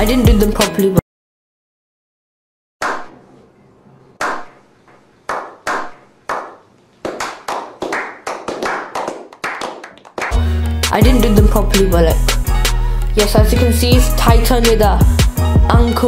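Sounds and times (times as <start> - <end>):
men slow clapping: 5.3 - 10.7
hip hop music with heavy bass: 10.4 - 16.0.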